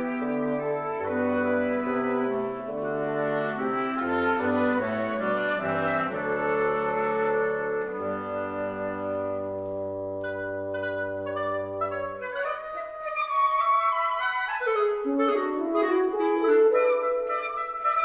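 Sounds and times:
wind quintet playing: 0:00.0 - 0:18.0.

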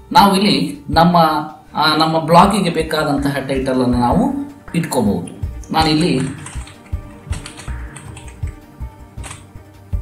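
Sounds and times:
person speaking: 0:00.0 - 0:08.4
keyboard typing: 0:05.2 - 0:08.6, 0:09.2 - 0:09.5.

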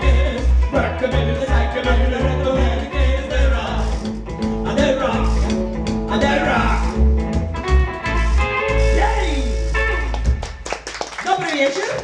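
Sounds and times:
hollow-body electric guitar: 0:00.0 - 0:10.6
upright double bass: 0:00.0 - 0:10.8.

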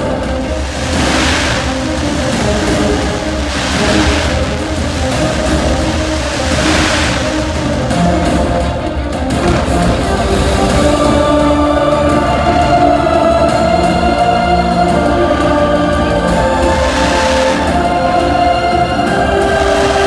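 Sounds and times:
fireworks hissing whooshes: 0:00.0 - 0:08.5, 0:16.2 - 0:18.3, 0:19.0 - 0:20.0
loud music: 0:00.0 - 0:20.0.

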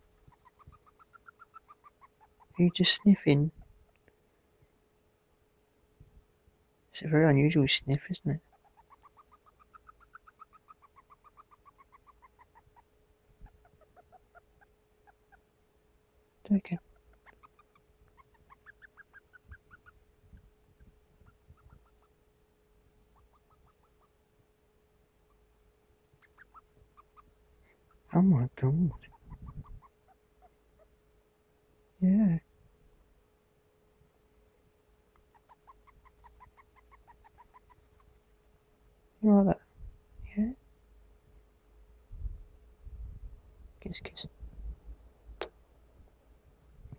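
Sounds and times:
hamster squeaking: 0:00.0 - 0:03.8, 0:08.3 - 0:15.5, 0:16.9 - 0:22.2, 0:23.1 - 0:24.2, 0:26.1 - 0:31.0, 0:35.2 - 0:38.2.

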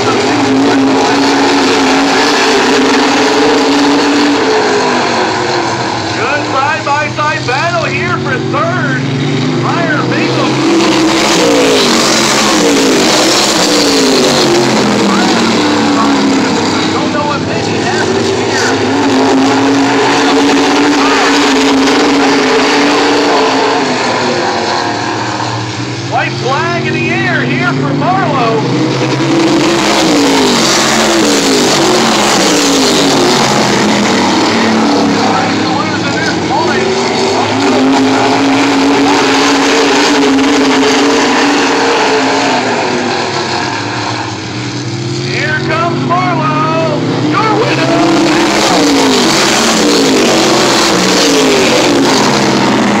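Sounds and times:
race car engines at speed: 0:00.0 - 0:53.0.

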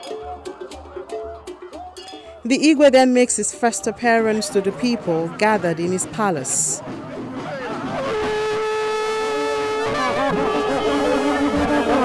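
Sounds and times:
voices: 0:02.5 - 0:07.9
tusk horn blowing: 0:07.8 - 0:12.0.

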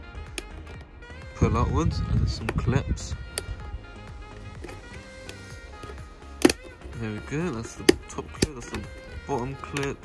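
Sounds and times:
background music steady tones: 0:00.0 - 0:10.0
plastic clip snapping: 0:00.3 - 0:00.9, 0:03.3 - 0:03.6, 0:04.6 - 0:10.0.

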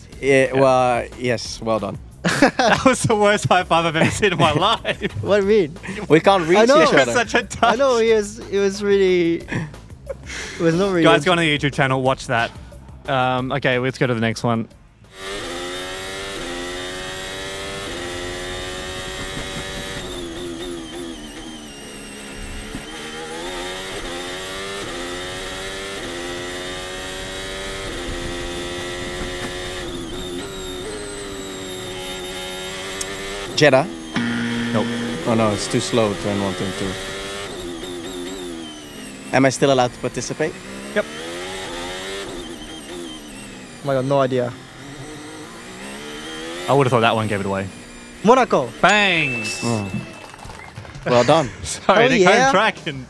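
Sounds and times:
racing car engine revving: 0:00.0 - 0:13.9, 0:14.8 - 0:51.3.

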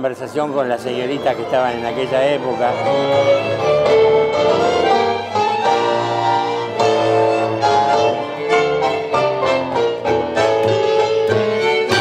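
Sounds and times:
violin with vibrato: 0:00.6 - 0:12.0
double bass line: 0:01.0 - 0:12.0.

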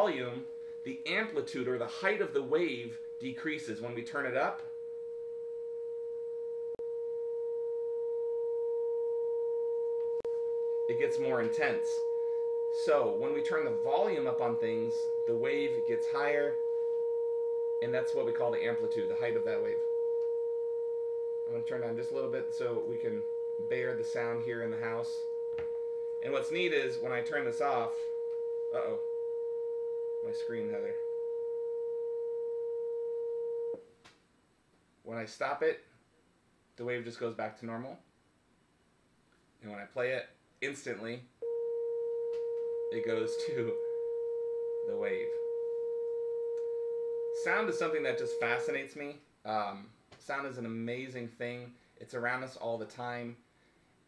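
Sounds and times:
steady sine tone: 0:00.0 - 0:33.9, 0:40.7 - 0:49.2.

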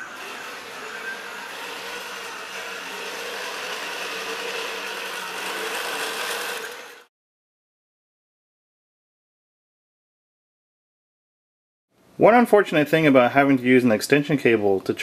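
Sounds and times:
robot motors whirring: 0:00.0 - 0:07.1.

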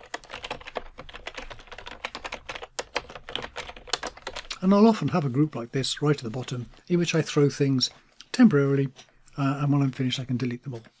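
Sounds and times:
computer keyboard typing: 0:00.0 - 0:05.2.

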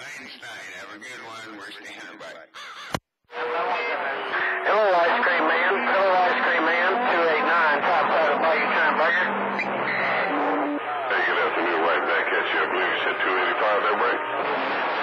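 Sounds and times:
garbled voices over radio: 0:00.0 - 0:03.0, 0:04.3 - 0:15.0
steady low tones: 0:03.4 - 0:11.8.

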